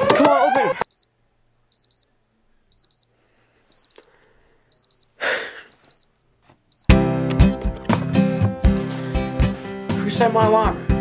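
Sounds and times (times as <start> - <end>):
alarm clock beeping: 0.6 - 1.1, 1.7 - 2.1, 2.7 - 3.1, 3.7 - 4.1, 4.7 - 5.1, 5.7 - 6.1, 6.7 - 7.0.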